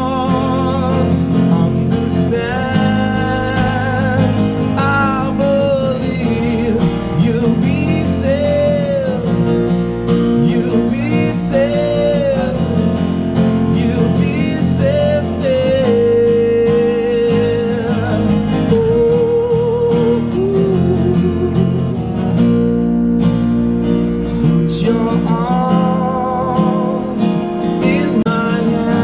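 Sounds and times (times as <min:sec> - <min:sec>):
person singing with vibrato: 0:00.0 - 0:09.6, 0:10.3 - 0:13.0, 0:13.6 - 0:22.1, 0:24.4 - 0:29.0.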